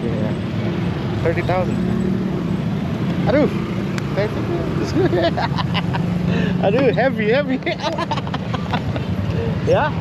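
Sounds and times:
motorbike and vehicle engines: 0:00.0 - 0:10.0
voices: 0:00.0 - 0:10.0.

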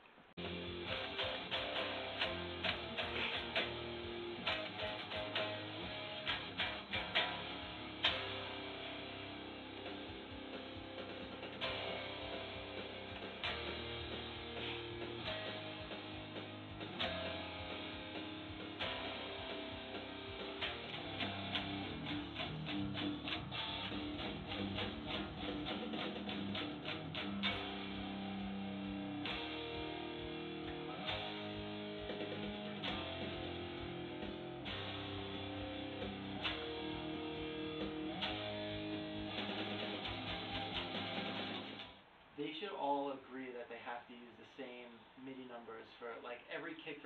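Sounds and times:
electric guitar rock riff: 0:00.4 - 0:42.0.

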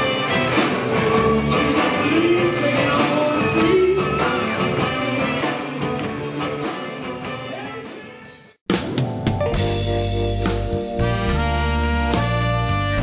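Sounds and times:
saxophone and horns: 0:00.0 - 0:08.6, 0:10.9 - 0:13.0
blues band with horns: 0:00.0 - 0:13.0.

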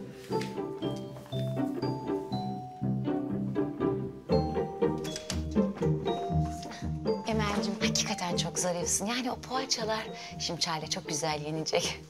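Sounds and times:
plucked string notes: 0:01.5 - 0:10.0.

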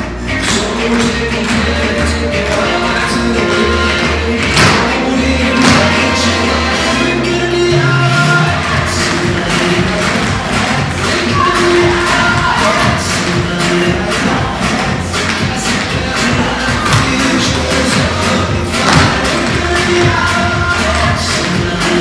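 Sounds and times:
dance music: 0:00.0 - 0:22.0.

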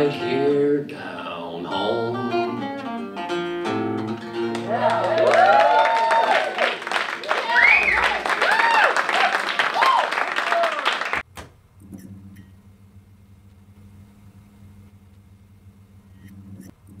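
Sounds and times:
audience applause: 0:04.4 - 0:11.2
faint low hum: 0:11.3 - 0:17.0.

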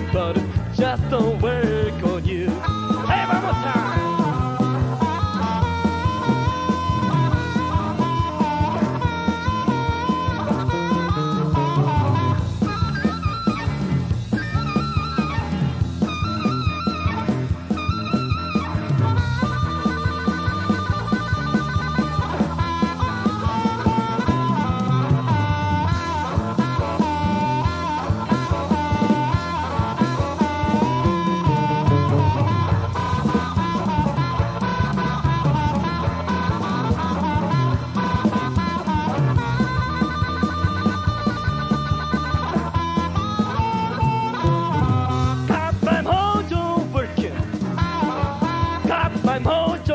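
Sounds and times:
electric blues band playing: 0:00.0 - 0:49.9
bending lead line: 0:02.4 - 0:19.6.

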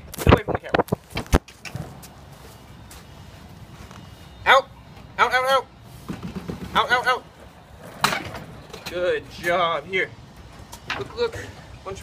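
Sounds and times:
low background noise: 0:00.0 - 0:12.0.

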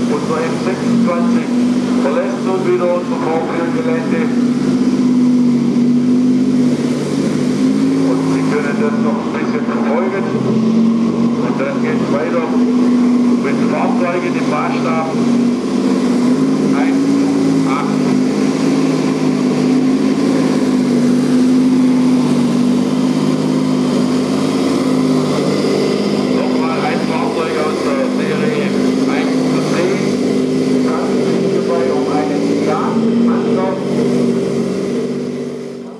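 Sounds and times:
people talking indistinctly: 0:00.0 - 0:04.5, 0:08.0 - 0:10.6, 0:11.4 - 0:15.4, 0:16.3 - 0:18.6, 0:25.2 - 0:34.0
model tank low droning: 0:00.0 - 0:35.9.

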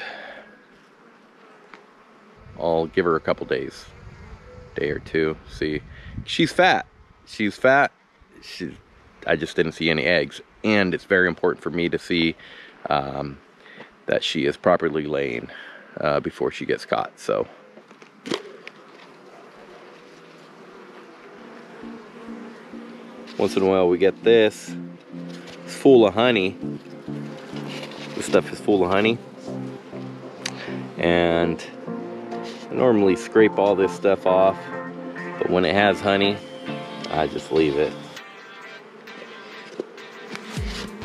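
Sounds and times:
honeybees buzzing: 0:00.0 - 0:05.7, 0:08.1 - 0:41.0
outdoor hiss: 0:12.1 - 0:14.4.

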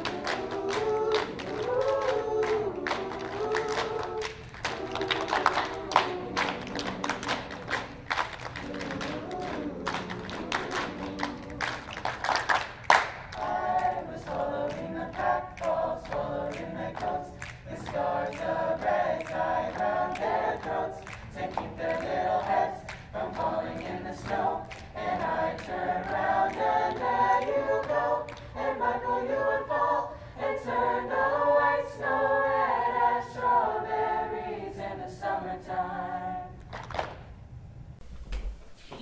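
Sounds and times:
hand claps and pats: 0:00.0 - 0:13.5, 0:36.6 - 0:37.3
choir singing a cappella: 0:00.0 - 0:36.8.

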